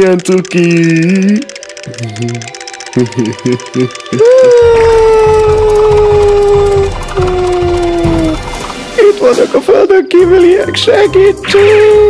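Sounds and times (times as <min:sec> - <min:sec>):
background music: 0:00.0 - 0:12.0
cartoon cat screaming: 0:04.1 - 0:08.4.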